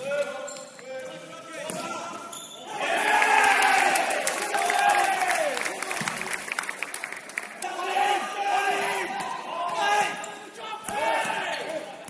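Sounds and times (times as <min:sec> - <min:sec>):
players shouting in indoor hall: 0:01.8 - 0:06.1, 0:07.6 - 0:12.0.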